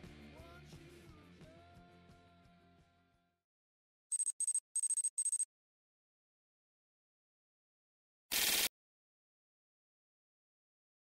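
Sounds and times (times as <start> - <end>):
high thin squeaking tone: 4.1 - 5.4.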